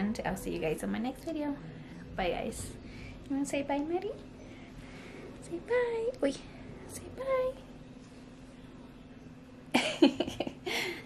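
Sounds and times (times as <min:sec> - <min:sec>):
woman speaking: 0:00.0 - 0:04.4, 0:05.4 - 0:07.8
faint steady hum: 0:00.0 - 0:11.0.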